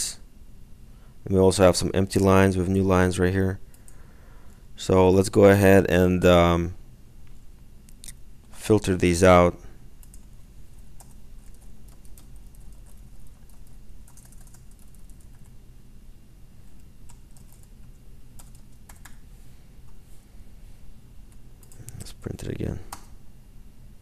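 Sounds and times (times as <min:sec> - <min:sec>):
typing on computer keyboard: 0:10.0 - 0:10.3, 0:11.0 - 0:15.6, 0:16.7 - 0:19.2.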